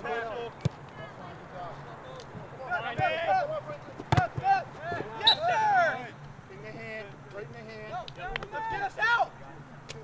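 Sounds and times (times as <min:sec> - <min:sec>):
players shouting: 0:02.6 - 0:06.3, 0:07.8 - 0:09.4.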